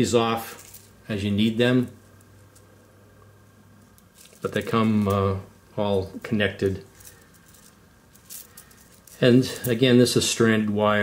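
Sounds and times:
wires rustling: 0:00.0 - 0:10.5.

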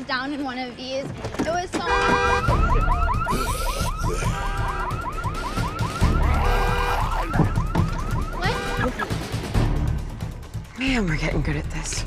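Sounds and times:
vehicle alarm chirping and wailing: 0:01.9 - 0:09.1.

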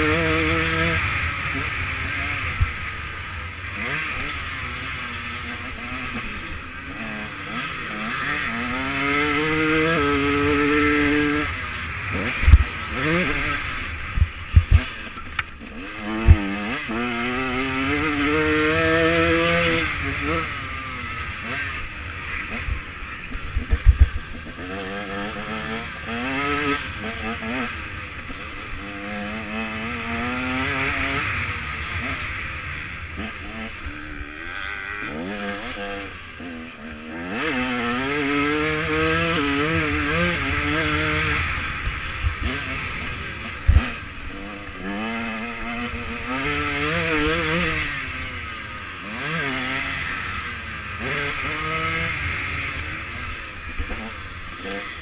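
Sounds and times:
motocross engine revving: 0:00.0 - 0:55.0.

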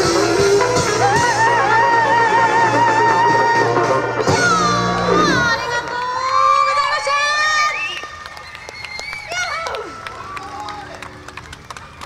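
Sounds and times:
audience cheering and whooping: 0:06.1 - 0:12.0.

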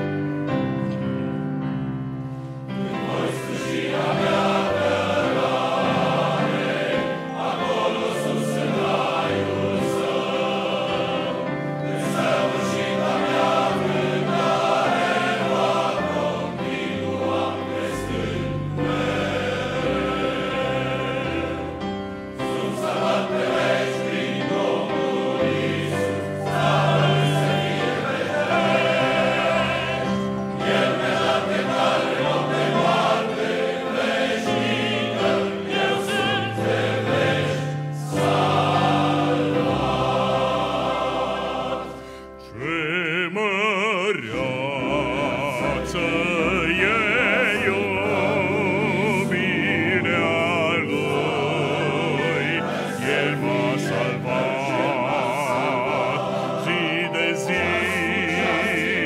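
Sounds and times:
men's choir singing a hymn: 0:02.4 - 0:59.0.

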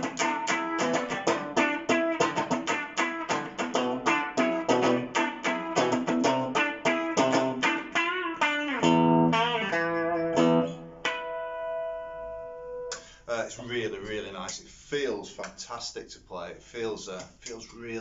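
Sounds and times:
electric guitar through amplifier: 0:00.0 - 0:13.1.

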